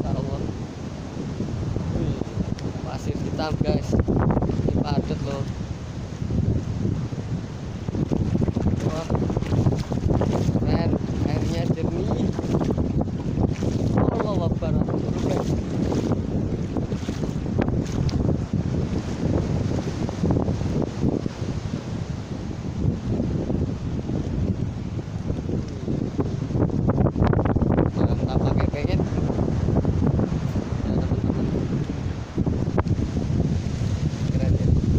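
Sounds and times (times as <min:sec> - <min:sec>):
ocean surf: 0:00.0 - 0:34.9
wind buffeting microphone: 0:00.0 - 0:34.9.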